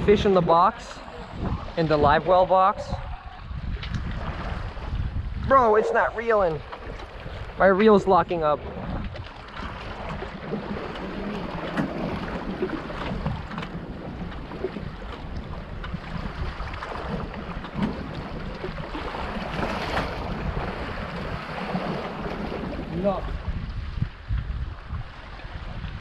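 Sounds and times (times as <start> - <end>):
water sloshing against boat: 0.0 - 26.0
wind buffeting microphone: 0.0 - 26.0.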